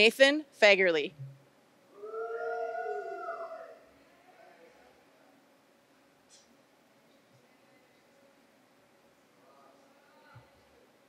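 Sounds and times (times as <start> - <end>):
person cheering woo: 2.0 - 3.8.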